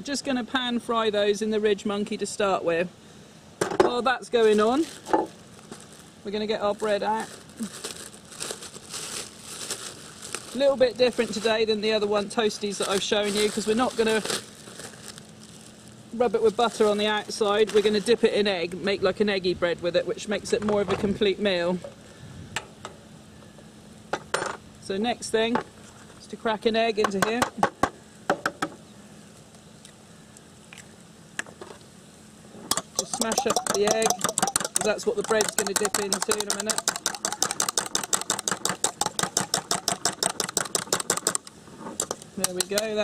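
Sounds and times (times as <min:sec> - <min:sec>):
fork beating egg in bowl: 0:32.7 - 0:41.4.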